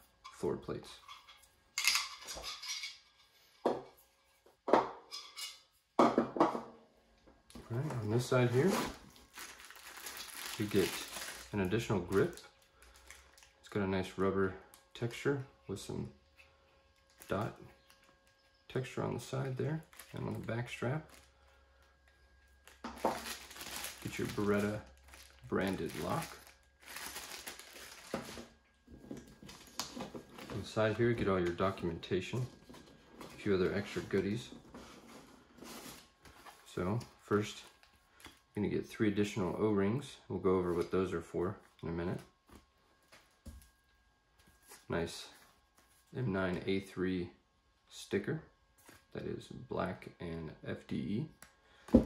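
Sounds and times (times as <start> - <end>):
plastic packaging crinkling: 7.8 - 13.6, 17.0 - 18.6, 19.3 - 36.5.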